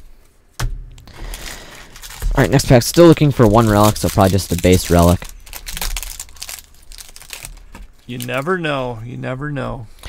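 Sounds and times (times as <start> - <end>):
wrapper crinkling: 1.1 - 8.6.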